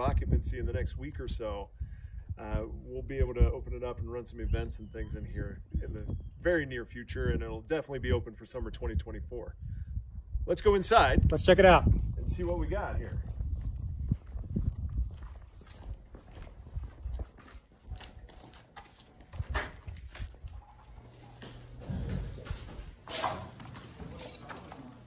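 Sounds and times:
footsteps on concrete: 12.4 - 25.0.

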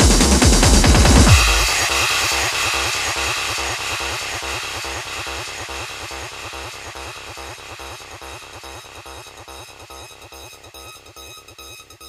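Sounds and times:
hard trance music: 0.0 - 12.0.

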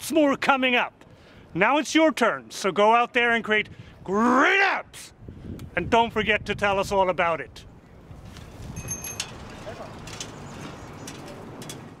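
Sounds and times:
birds chirping: 10.2 - 11.4.

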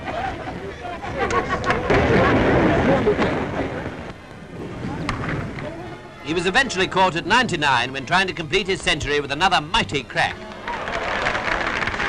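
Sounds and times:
crowd cheering and shouting: 10.3 - 12.0.

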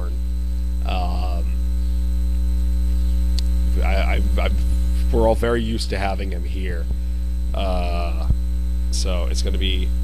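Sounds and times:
electrical mains hum: 0.0 - 10.0
person speaking: 0.9 - 1.6, 3.4 - 7.0, 7.6 - 10.0
faint click: 3.3 - 3.5.

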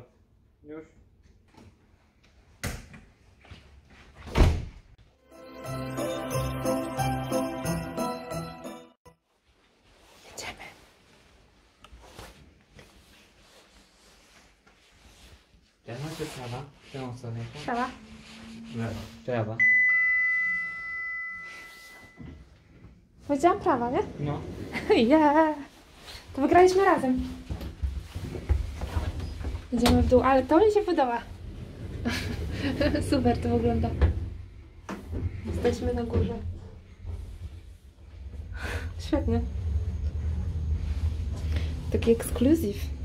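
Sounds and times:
door closing with heavy thud: 4.2 - 4.8
two-note elevator chime: 5.3 - 8.9, 18.6 - 22.4.

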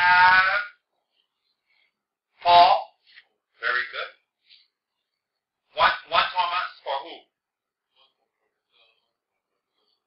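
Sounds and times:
man holding a long syllable: 0.0 - 1.0.

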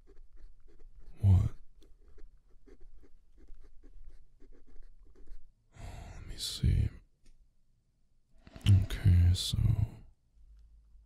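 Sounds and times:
pen scratching on paper: 0.0 - 5.5.

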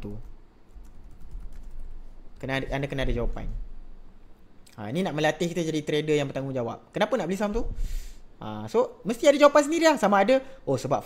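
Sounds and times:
computer keyboard typing: 0.0 - 2.0.

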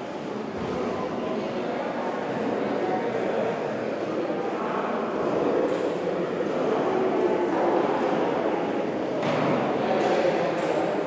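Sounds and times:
echoing murmur of voices: 0.0 - 11.0.

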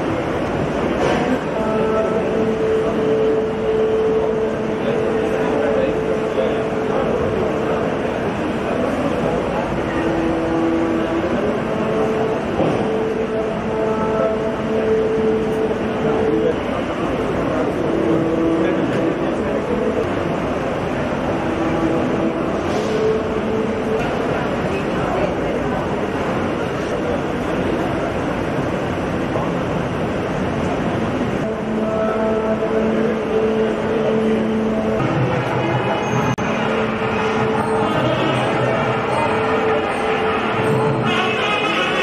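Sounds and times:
dense steady noise: 0.0 - 42.0
noisy din with held drone: 0.0 - 42.0.

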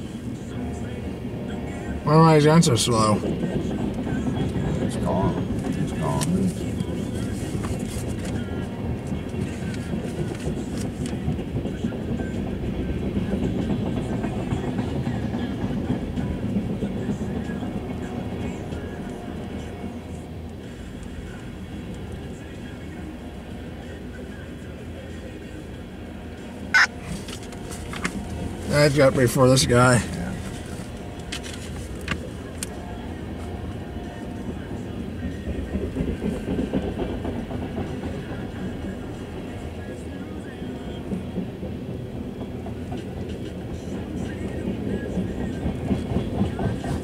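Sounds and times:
train wheels rumbling on rail: 0.0 - 47.0.

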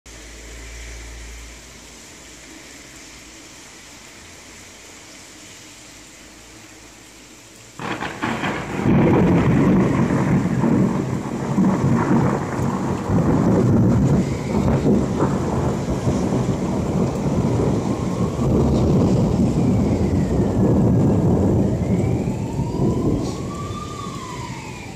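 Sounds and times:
rain falling: 0.1 - 24.9
siren wailing: 7.8 - 24.9
thunder rumbling: 7.8 - 24.9.

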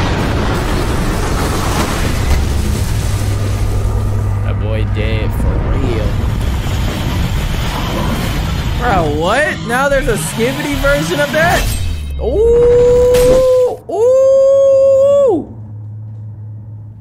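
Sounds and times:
deep hum: 0.0 - 17.0
loud rumbling: 0.0 - 17.0
wavering voice-like cry: 12.2 - 15.5.

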